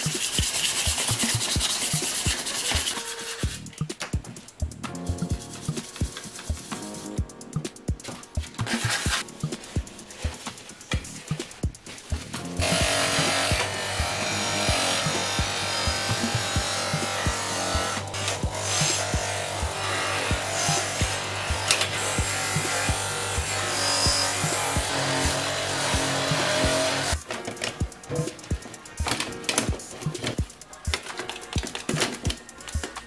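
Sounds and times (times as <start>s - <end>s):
background music with beat: 0.0s - 33.0s
bench polisher humming: 8.5s - 27.2s.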